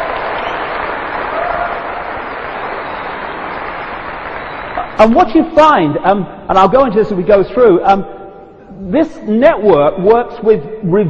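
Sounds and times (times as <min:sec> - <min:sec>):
audience applauding: 0:00.0 - 0:05.2.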